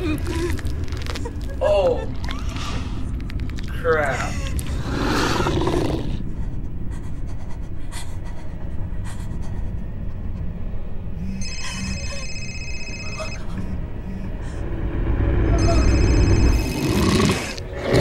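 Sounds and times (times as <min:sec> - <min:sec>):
low rumble: 0:00.0 - 0:18.0
high shrill ringing tone: 0:14.1 - 0:16.9.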